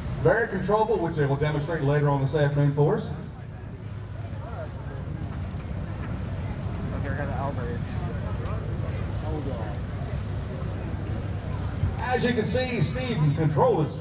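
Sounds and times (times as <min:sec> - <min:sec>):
low engine drone: 0:00.0 - 0:14.0
people talking: 0:00.2 - 0:14.0.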